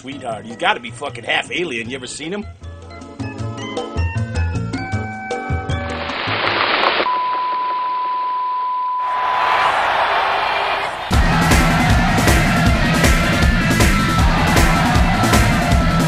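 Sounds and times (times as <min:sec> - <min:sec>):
tv static hiss: 0:05.9 - 0:07.6
music bed: 0:11.1 - 0:16.0
rock band with drums and guitar: 0:11.1 - 0:16.0.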